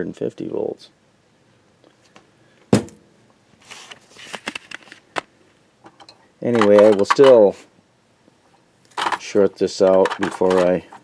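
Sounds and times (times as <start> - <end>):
plastic parts clattering: 5.8 - 7.4, 8.9 - 11.0.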